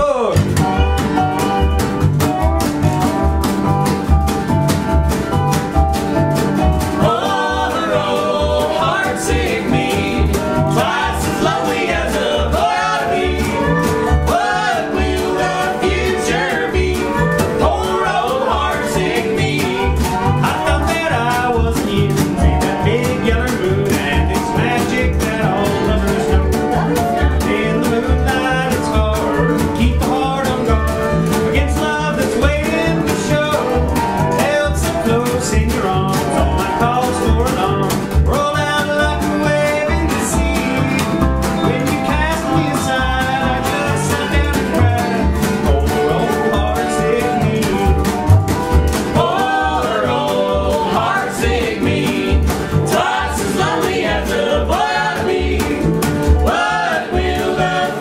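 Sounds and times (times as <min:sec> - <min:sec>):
acoustic guitar: 0:00.0 - 0:58.0
resonator guitar: 0:00.0 - 0:58.0
upright bass: 0:00.0 - 0:58.0
woman singing lead: 0:06.8 - 0:30.7, 0:49.1 - 0:58.0
men singing harmony: 0:06.9 - 0:26.6, 0:27.3 - 0:48.4, 0:49.0 - 0:58.0.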